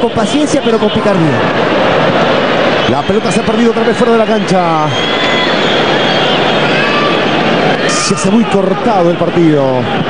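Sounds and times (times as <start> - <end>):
stadium crowd roar: 0.0 - 10.0
whistled tones: 2.7 - 7.3.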